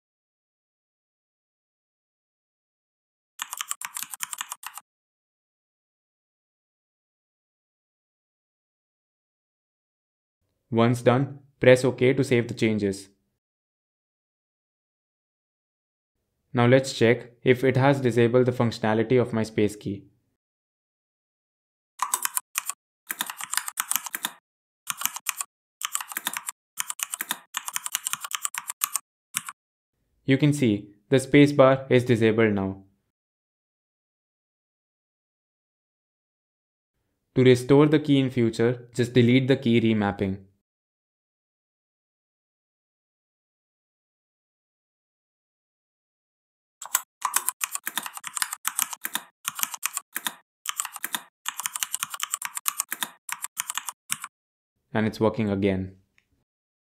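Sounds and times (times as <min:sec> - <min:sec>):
computer keyboard typing: 0:03.4 - 0:04.8, 0:22.0 - 0:29.6, 0:46.8 - 0:54.3.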